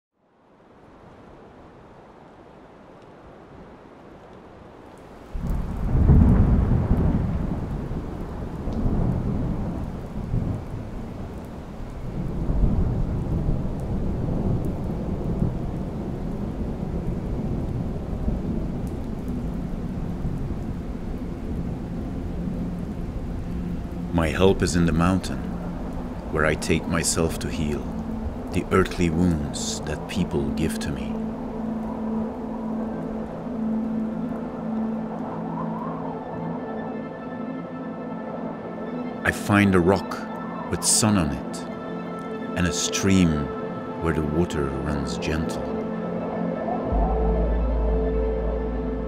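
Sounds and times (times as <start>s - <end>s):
steady rain: 0.1s - 49.0s
thunder crack and rumble: 5.4s - 21.9s.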